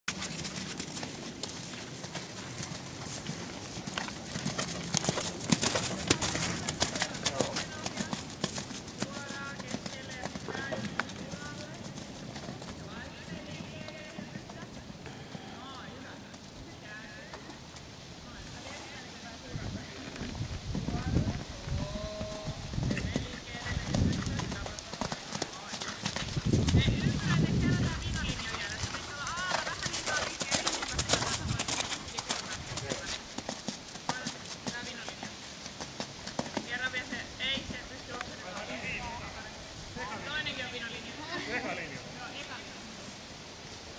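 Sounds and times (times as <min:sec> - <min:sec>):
horse hoofbeats on sand: 0:00.1 - 0:16.6, 0:20.4 - 0:39.2.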